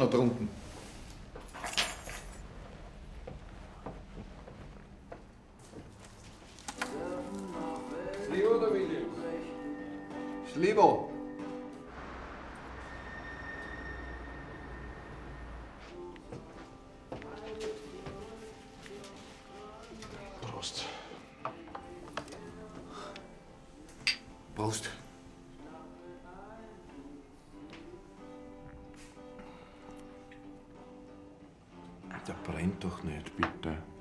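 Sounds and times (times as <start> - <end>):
faint music: 0.0 - 34.0.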